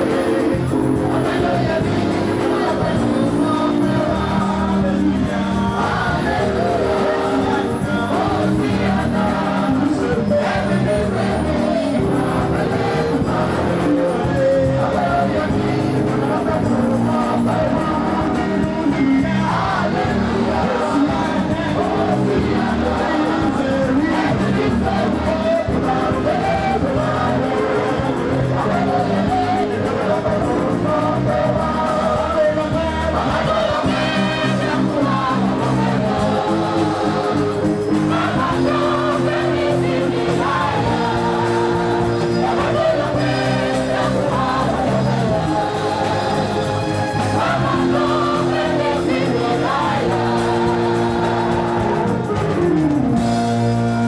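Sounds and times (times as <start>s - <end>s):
choir singing through pa system: 0.0s - 54.0s.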